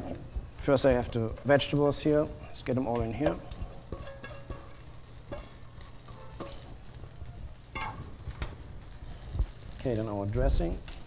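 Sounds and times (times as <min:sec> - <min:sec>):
vegetables scraped from metal bowl: 0:00.9 - 0:07.2.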